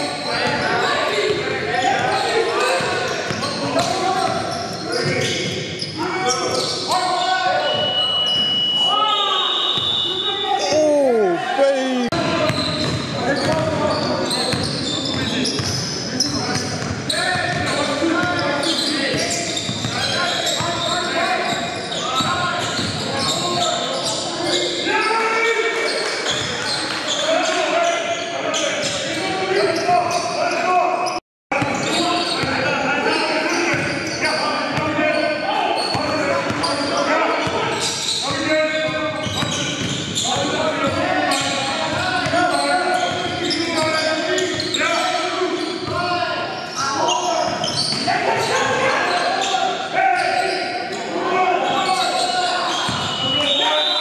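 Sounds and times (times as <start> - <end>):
players and spectators voices: 0.0 - 54.0.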